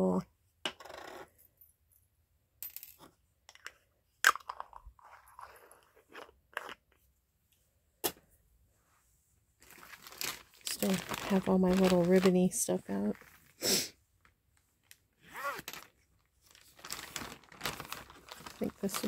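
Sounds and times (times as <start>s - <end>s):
plastic bag crinkling: 9.6s - 13.6s, 14.8s - 19.0s.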